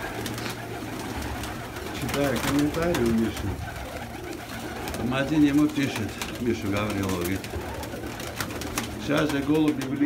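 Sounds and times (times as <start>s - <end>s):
pigeons cooing: 0.0s - 10.0s
wing flaps: 0.0s - 10.0s.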